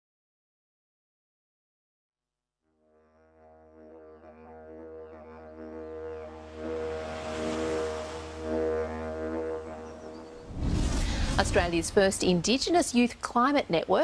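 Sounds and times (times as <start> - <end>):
didgeridoo drone: 2.8 - 12.0.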